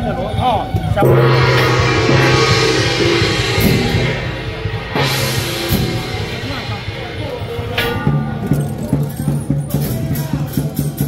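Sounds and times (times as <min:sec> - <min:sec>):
gong ringing: 0:01.0 - 0:09.0.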